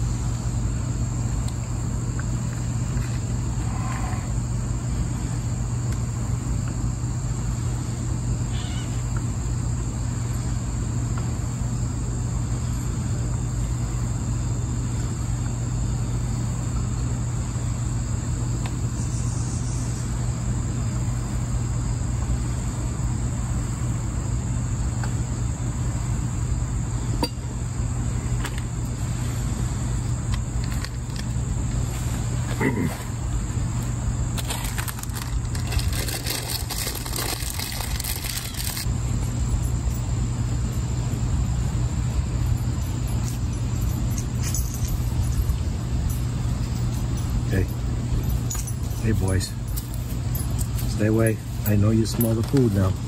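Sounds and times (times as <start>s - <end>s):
insect chorus: 0.0s - 53.0s
low rumbling background noise: 0.0s - 53.0s
plastic packet crinkling: 34.4s - 38.9s
dog collar tags jingling: 42.4s - 52.8s.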